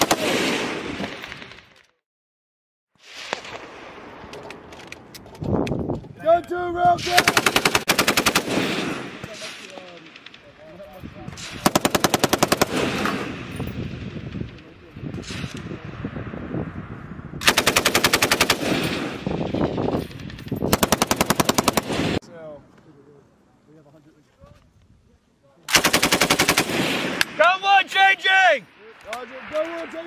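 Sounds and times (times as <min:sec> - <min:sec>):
rolling gunfire echo: 0:07.0 - 0:10.7, 0:11.4 - 0:15.6, 0:25.7 - 0:27.6
machine gun bursts: 0:20.7 - 0:22.2, 0:25.7 - 0:26.8.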